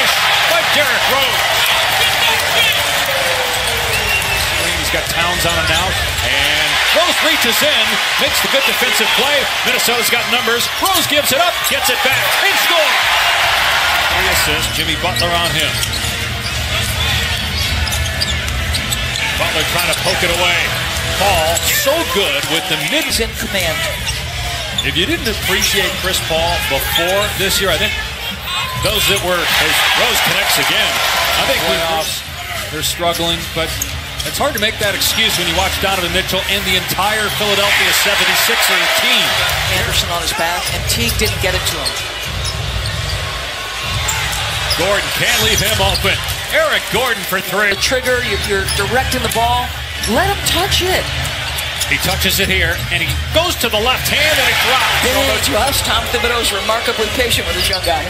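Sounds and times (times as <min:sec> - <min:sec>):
arena crowd noise: 0:00.0 - 0:58.0
sneaker squeaks: 0:02.6 - 0:06.5, 0:14.6 - 0:25.9, 0:33.1 - 0:35.0, 0:38.8 - 0:46.6, 0:47.6 - 0:52.9, 0:55.1 - 0:58.0.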